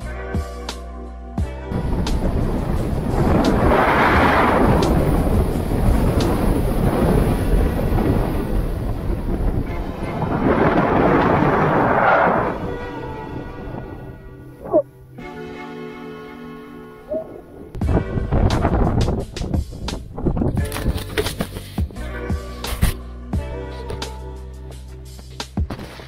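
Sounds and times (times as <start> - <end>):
snowboard scraping over snow: 1.7 - 13.2
wind over microphone: 1.7 - 15.0, 17.0 - 22.0.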